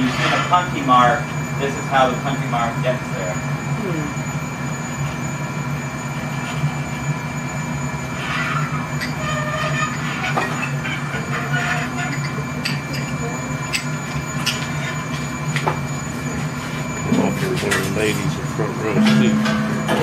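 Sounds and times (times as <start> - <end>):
furnace burner and blower roar: 0.0 - 20.0.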